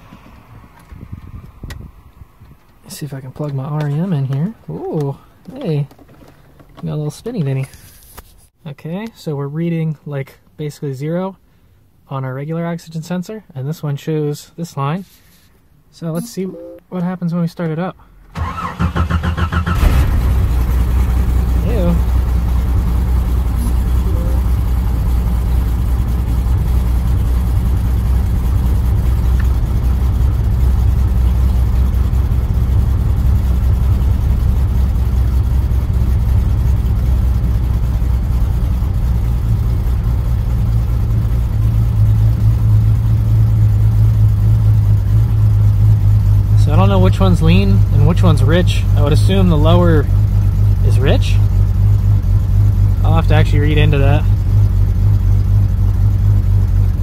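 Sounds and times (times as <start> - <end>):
car engine starting and idling: 0.0 - 8.0, 17.6 - 57.0.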